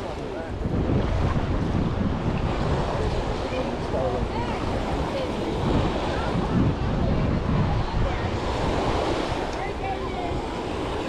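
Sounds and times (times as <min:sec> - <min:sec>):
faint voices: 0:00.0 - 0:11.0
small waves washing onto beach: 0:00.0 - 0:11.0
wind buffeting microphone: 0:00.0 - 0:11.0.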